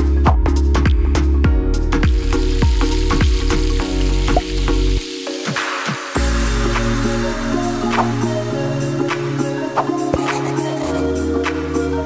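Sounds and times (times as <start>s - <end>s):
music with deep bass beat: 0.0s - 12.0s
sizzling: 1.9s - 11.1s.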